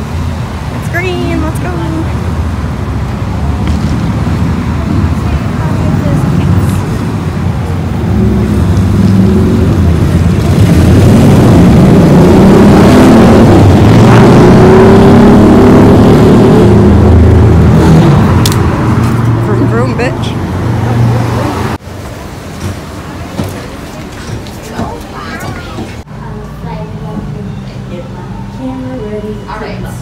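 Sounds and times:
rumble of vehicle engines: 0:00.0 - 0:30.0.

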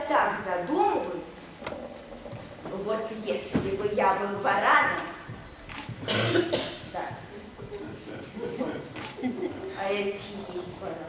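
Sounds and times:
person coughing: 0:06.1 - 0:06.9.

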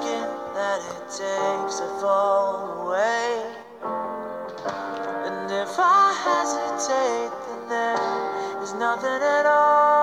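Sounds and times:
person singing: 0:00.0 - 0:10.0
slow song with held chords: 0:00.0 - 0:10.0.

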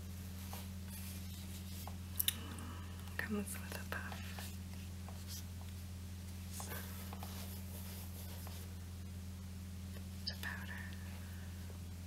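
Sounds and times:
electrical hum and hiss: 0:00.0 - 0:12.0.

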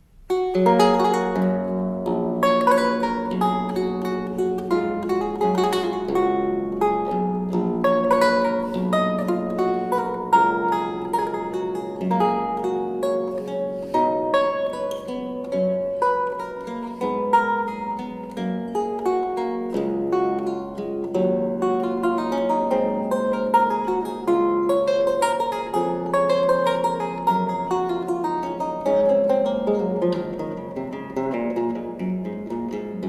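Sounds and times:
solo archlute playing: 0:00.0 - 0:33.0.

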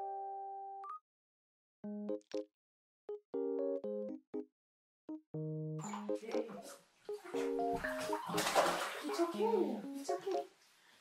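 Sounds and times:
light piano music: 0:00.0 - 0:01.0, 0:03.1 - 0:04.5, 0:05.1 - 0:10.5
bathwater splashing in a tub: 0:05.8 - 0:10.4.

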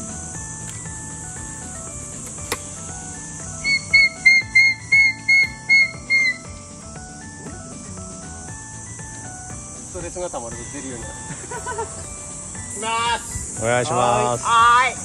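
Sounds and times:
background music: 0:00.0 - 0:15.0
man's shrill whistle-like cry: 0:03.6 - 0:06.5.

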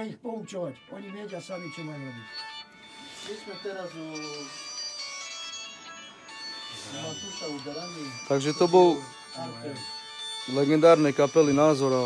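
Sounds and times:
electronic beeping melody: 0:00.7 - 0:12.0
man talking: 0:03.2 - 0:04.8, 0:06.8 - 0:09.9, 0:10.5 - 0:12.0.

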